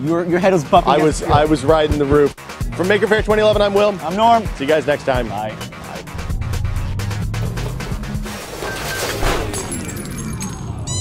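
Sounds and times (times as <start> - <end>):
crash-like hit: 7.6 - 10.4.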